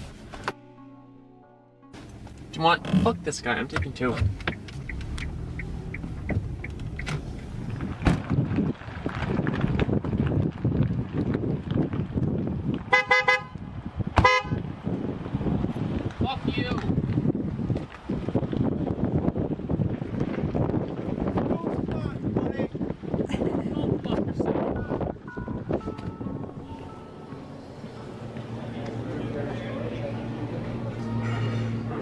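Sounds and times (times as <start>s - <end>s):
car horn honks: 12.9s - 13.6s, 14.2s - 14.6s, 24.7s - 27.4s.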